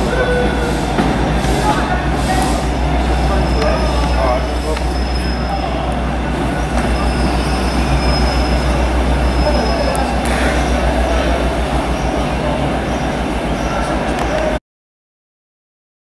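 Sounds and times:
high wheel squeals: 0.0s - 14.0s
train running gear rumble: 0.0s - 14.6s.

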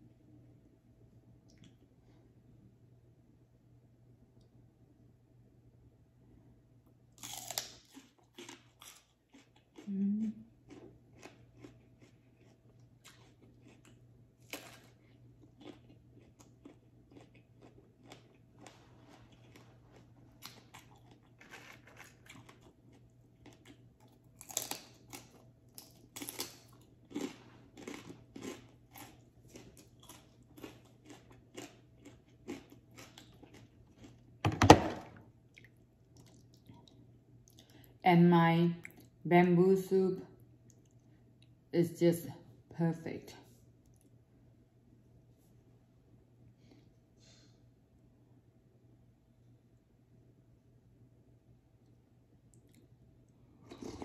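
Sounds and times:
person chewing crunchy vegetables: 7.2s - 34.5s, 35.4s - 38.0s, 52.5s - 54.0s.

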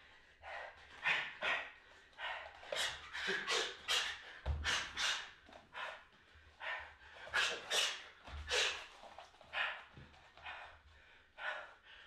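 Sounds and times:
man breathing heavily: 0.0s - 12.0s.

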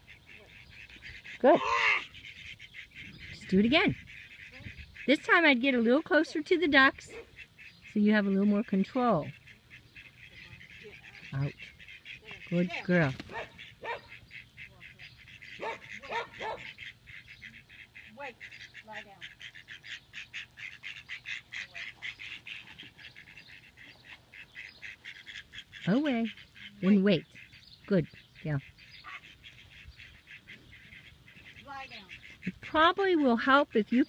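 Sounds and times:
ducks quacking: 0.0s - 34.0s
dog barking: 13.3s - 14.2s, 15.6s - 16.7s.

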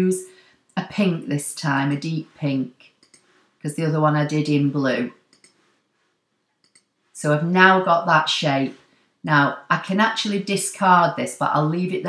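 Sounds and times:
faint computer mouse clicks: 3.0s - 3.4s, 5.3s - 5.7s, 6.6s - 6.9s.

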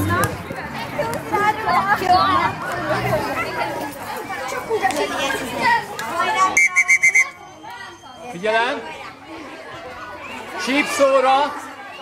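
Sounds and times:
children and adults chattering: 0.0s - 12.0s
short high-pitched tones: 6.6s - 7.4s.

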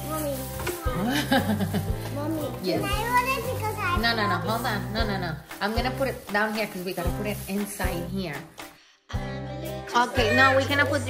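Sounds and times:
background music with low notes: 0.0s - 11.0s
child laughing: 0.9s - 1.8s
children's voices: 2.2s - 4.0s.

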